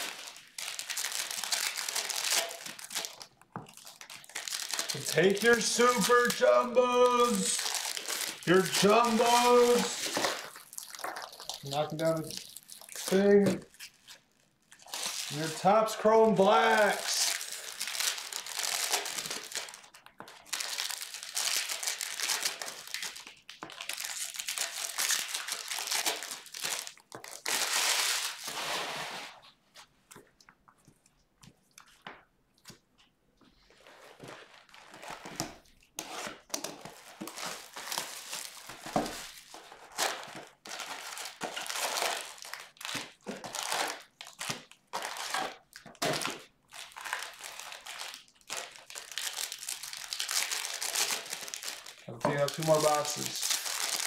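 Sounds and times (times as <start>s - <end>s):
foil wrappers crinkling and tearing: 0.0s - 29.4s, 33.7s - 54.0s
cards rustling and clicking: 1.4s - 12.4s, 51.1s - 53.9s.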